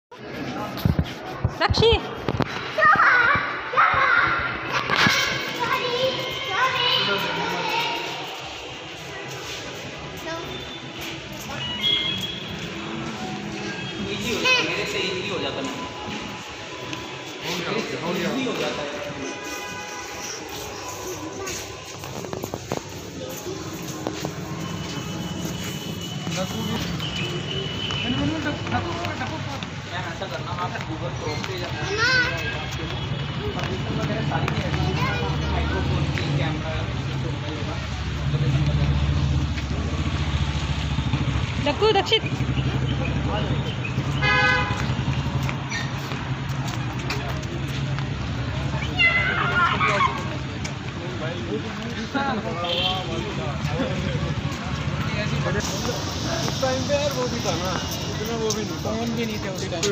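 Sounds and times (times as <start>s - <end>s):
steady hubbub: 0.1s - 59.9s
vehicle horn toot: 11.5s - 12.6s, 44.1s - 45.0s
child calling out: 48.8s - 50.3s.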